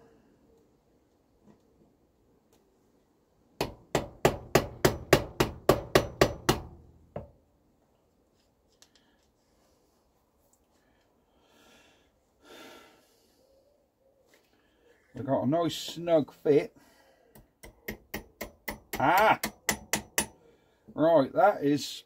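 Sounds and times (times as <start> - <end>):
hammer tapping metal pin: 17.4 - 20.4.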